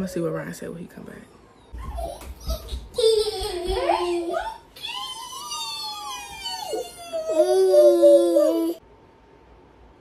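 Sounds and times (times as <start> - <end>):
toddler squealing: 4.3 - 8.8.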